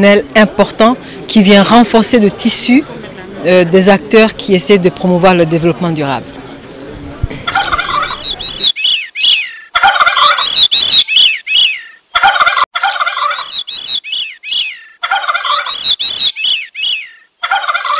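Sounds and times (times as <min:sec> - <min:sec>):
bird calls: 0:07.4 - 0:17.9.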